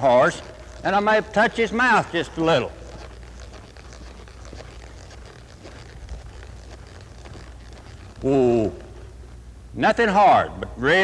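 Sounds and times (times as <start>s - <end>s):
hoofbeats on soft dirt: 0.0s - 9.4s
low steady hum: 0.0s - 11.0s.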